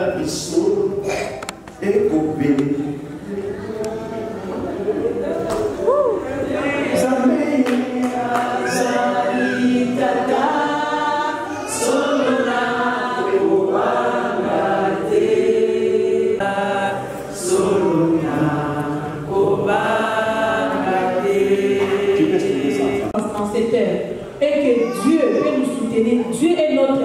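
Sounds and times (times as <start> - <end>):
preacher and congregation singing: 5.0 - 23.2.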